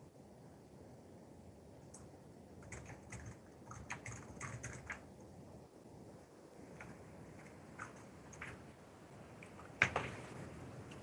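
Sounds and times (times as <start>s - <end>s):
computer keyboard typing: 1.9s - 5.0s, 7.4s - 8.6s.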